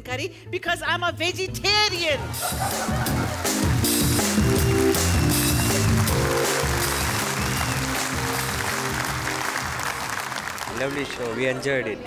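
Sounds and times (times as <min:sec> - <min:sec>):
music playing: 0:00.9 - 0:11.8
audience applauding: 0:02.4 - 0:11.8.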